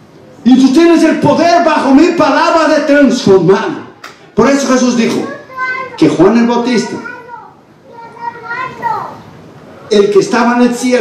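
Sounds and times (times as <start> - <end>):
faint high-pitched voice: 6.9 - 9.3.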